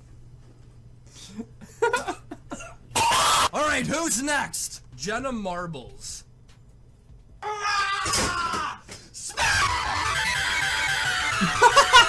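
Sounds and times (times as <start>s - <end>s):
man screaming: 7.4s - 12.0s.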